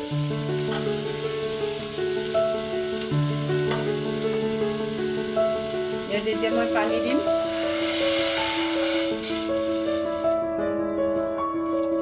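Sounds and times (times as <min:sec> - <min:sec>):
food sizzling in a pot: 0:00.0 - 0:10.6
background music of held notes: 0:00.0 - 0:12.0.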